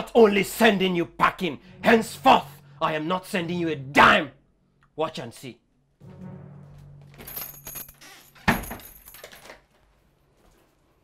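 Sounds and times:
metallic clinking clatter: 7.1 - 9.8.

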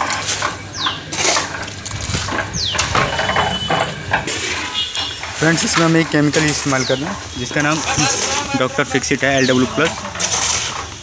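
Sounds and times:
construction machinery clattering: 0.0 - 11.0.

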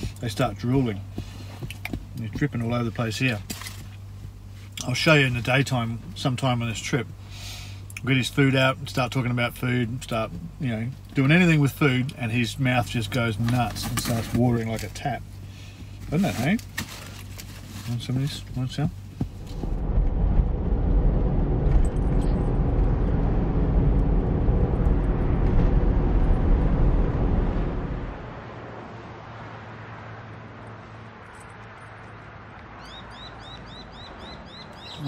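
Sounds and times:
vehicle engine and road noise: 0.0 - 35.0
bird chirping: 32.7 - 35.0.

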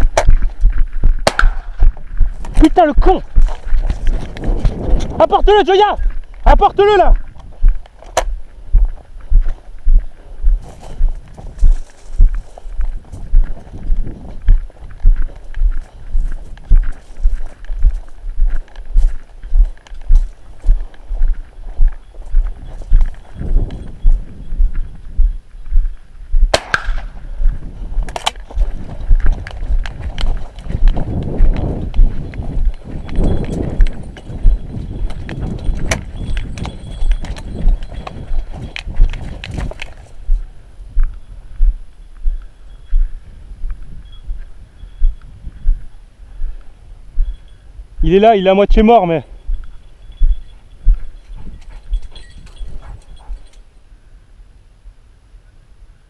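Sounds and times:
sharp cracks: 0.0 - 5.2, 26.4 - 27.2, 28.0 - 28.6
walking footsteps thudding: 0.0 - 5.2, 7.2 - 47.5, 48.7 - 53.6.

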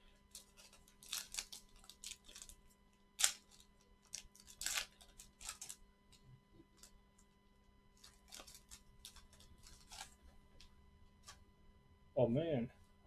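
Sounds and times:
plastic and foil crinkling: 0.0 - 11.4.

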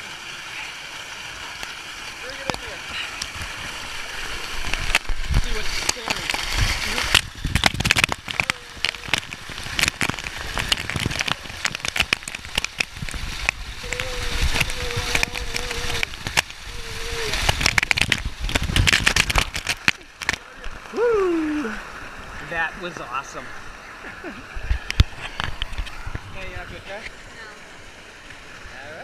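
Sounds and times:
water pouring onto microphone: 1.2 - 23.4.

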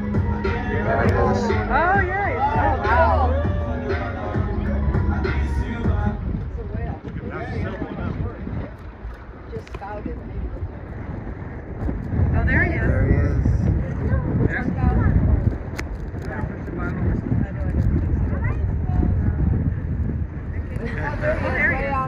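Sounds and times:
faint voices: 0.0 - 22.0
wind buffeting microphone: 0.0 - 22.0.

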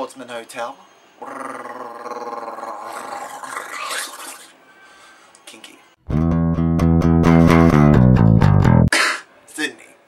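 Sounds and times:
long rough growl: 1.2 - 4.2.

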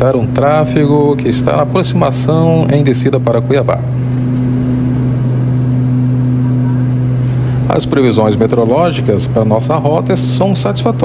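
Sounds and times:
turboprop engines droning: 0.0 - 11.0
rushing air: 3.8 - 8.0.

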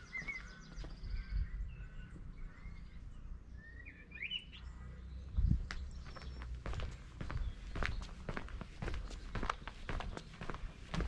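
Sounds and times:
footsteps on tarmac: 0.0 - 1.2, 5.5 - 11.0.

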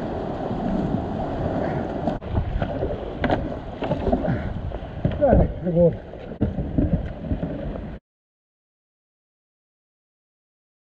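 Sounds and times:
water splashing around kayak: 0.0 - 8.0.

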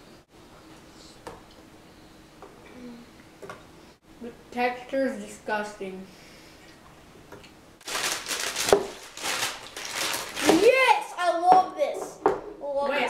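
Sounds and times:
children making vocal sounds: 10.4 - 13.0.

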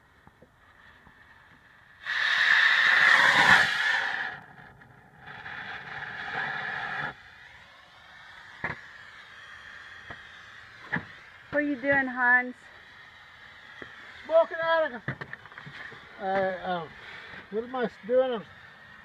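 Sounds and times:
smoke bomb hissing: 0.0 - 19.0.

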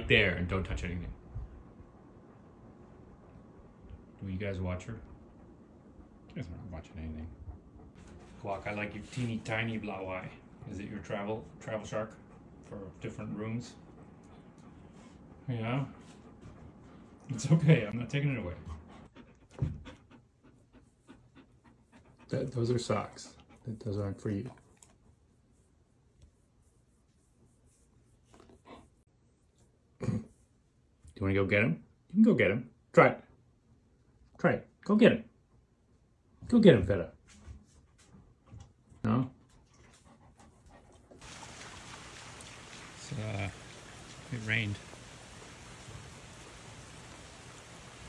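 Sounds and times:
dog panting: 1.5 - 25.6, 37.7 - 41.4
rain falling on water: 41.2 - 48.0.

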